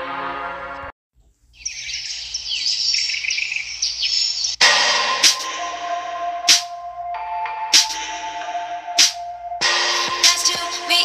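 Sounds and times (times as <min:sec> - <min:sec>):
birds chirping in chorus: 0:01.4 - 0:04.6
electronic music with sharp beats: 0:04.6 - 0:11.0
song playing: 0:04.6 - 0:11.0.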